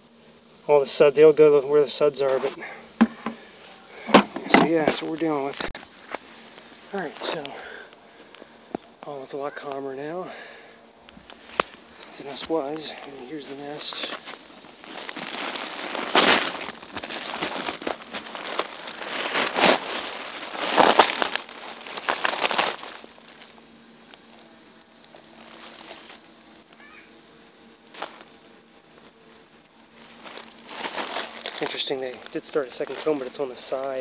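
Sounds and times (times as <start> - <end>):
faint steady hum: 0.0 - 34.0
paper rustling: 11.3 - 24.3, 25.0 - 26.9, 29.9 - 34.0
papery nest crumpling and tearing: 11.3 - 24.3, 25.0 - 26.9, 29.9 - 34.0.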